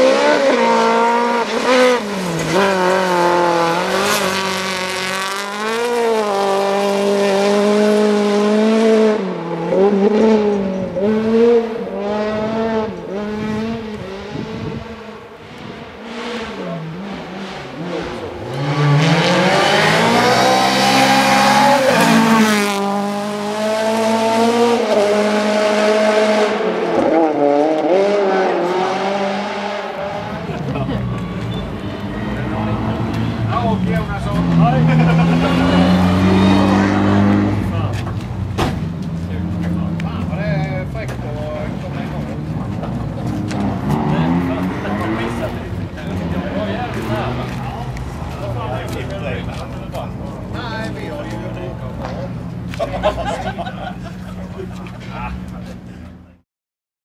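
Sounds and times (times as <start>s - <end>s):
rally car engines revving: 0.0s - 56.4s.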